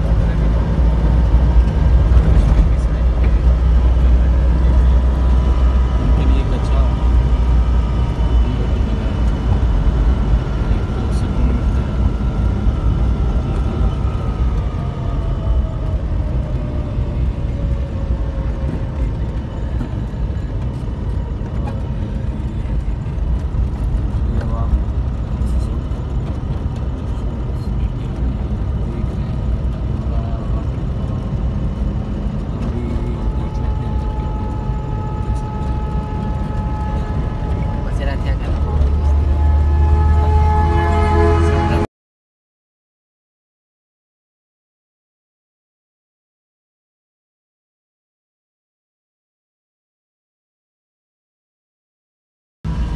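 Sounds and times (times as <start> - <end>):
faint whining tones: 0.0 - 41.1
engine and tyres rumbling: 0.0 - 41.9, 52.6 - 52.9.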